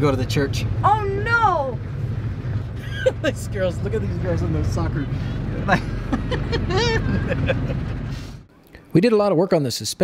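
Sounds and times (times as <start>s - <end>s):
road and wind rumble in car: 0.0s - 8.5s
man laughing: 2.8s - 3.4s, 5.5s - 7.9s.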